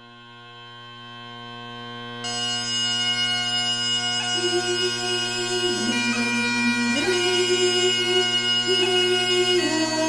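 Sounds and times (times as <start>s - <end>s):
bagpipe playing: 0.0s - 10.0s.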